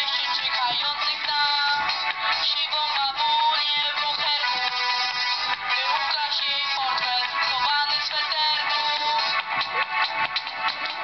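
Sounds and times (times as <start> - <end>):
song with singing voice: 0.0 - 11.0.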